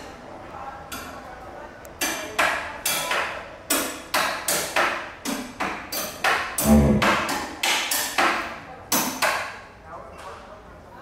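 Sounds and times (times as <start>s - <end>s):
metallic hits on guitar strings: 6.6s - 7.3s.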